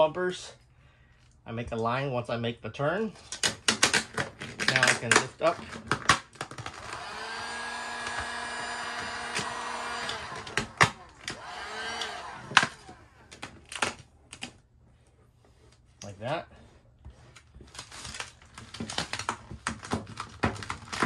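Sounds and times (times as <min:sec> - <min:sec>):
heat gun fan whine: 0:06.6 - 0:13.8
vinyl film crinkling: 0:17.3 - 0:21.0.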